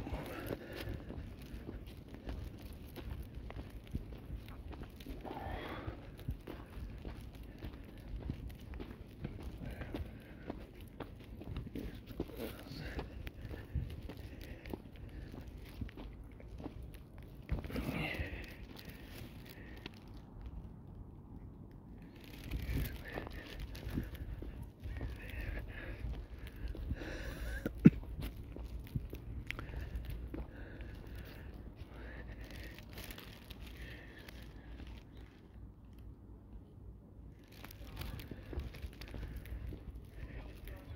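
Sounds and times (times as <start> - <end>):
footsteps crunching on gravel: 0.0 - 20.2, 22.0 - 35.4, 37.4 - 40.9
faint distant voices: 37.3 - 40.9.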